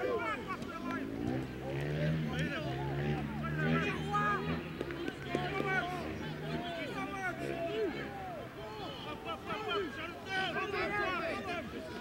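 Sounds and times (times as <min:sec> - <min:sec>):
voices calling and shouting: 0:00.0 - 0:12.0.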